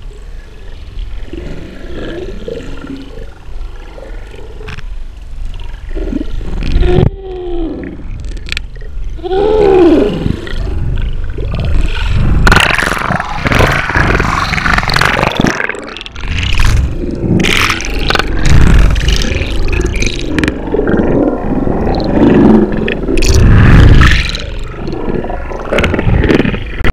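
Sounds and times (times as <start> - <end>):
underwater churning and bubbling: 0.0 - 26.9.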